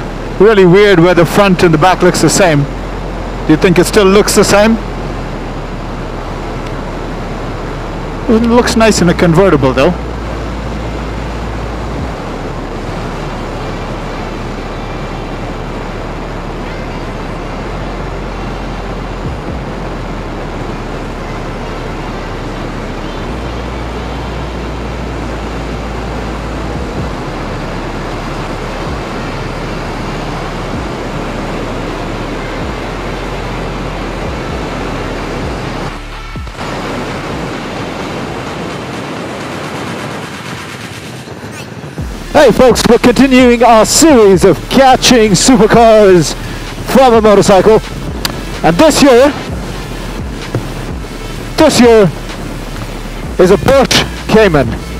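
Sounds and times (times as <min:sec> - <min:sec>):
motorcycle road noise: 0:00.0 - 0:54.9
wind rushing: 0:00.0 - 0:54.9.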